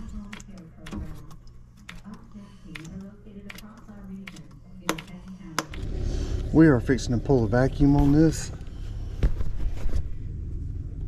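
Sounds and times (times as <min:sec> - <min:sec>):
low wavering hum: 0:05.4 - 0:11.0.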